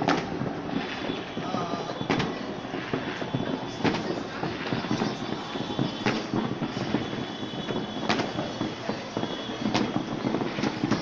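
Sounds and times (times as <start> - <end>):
distant fireworks crackling: 0.0 - 11.0
firework bangs: 0.0 - 11.0.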